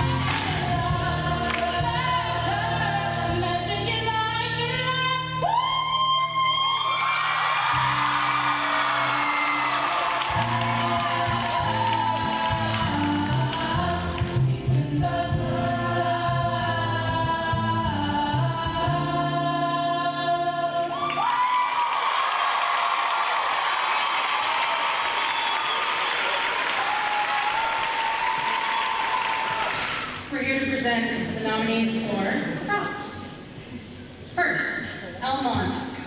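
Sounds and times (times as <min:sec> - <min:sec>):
ensemble singing with instruments: 0:00.0 - 0:04.4, 0:07.8 - 0:21.3
audience applause: 0:06.8 - 0:13.7, 0:21.0 - 0:30.3.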